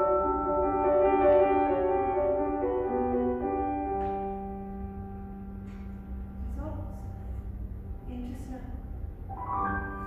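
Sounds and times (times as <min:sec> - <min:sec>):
piano and vibraphone chord: 0:00.0 - 0:07.9, 0:09.2 - 0:10.0
low piano note: 0:00.0 - 0:08.5, 0:09.3 - 0:10.0.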